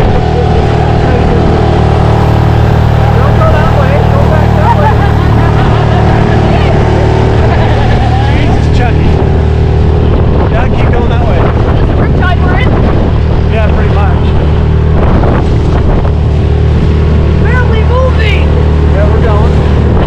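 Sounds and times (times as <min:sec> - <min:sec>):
outboard motor droning: 0:00.0 - 0:20.0.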